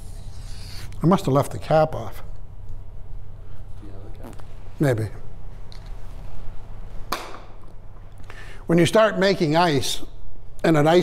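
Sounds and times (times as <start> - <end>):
low room hum: 0.0 - 11.0
sharp snap: 7.1 - 7.6.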